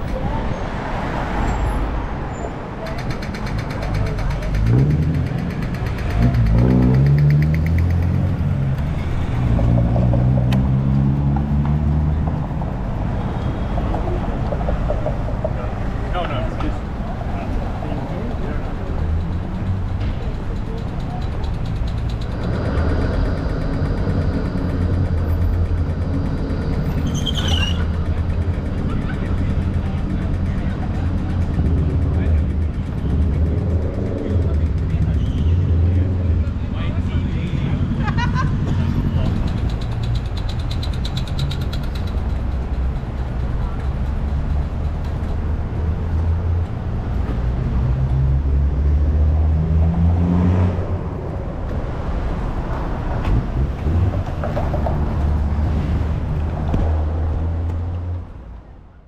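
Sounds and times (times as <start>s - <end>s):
indistinct voices: 0.0s - 46.1s
traffic rumble: 0.0s - 59.0s
vehicles passing: 0.0s - 59.0s
vehicle engine revving: 4.0s - 13.1s, 21.4s - 36.6s.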